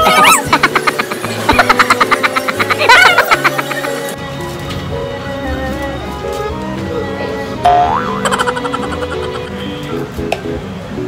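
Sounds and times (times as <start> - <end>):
background music: 0.0 - 11.0
cartoon boing sound effect: 7.6 - 9.4.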